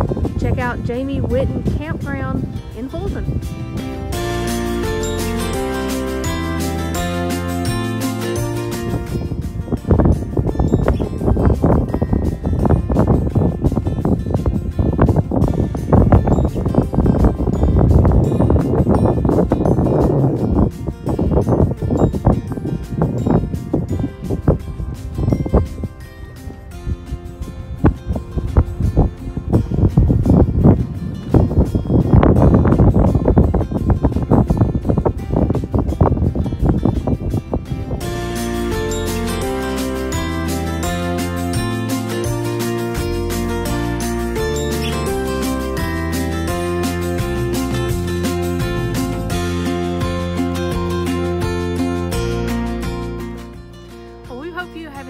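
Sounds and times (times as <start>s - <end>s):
wind buffeting microphone: 0.0s - 55.0s.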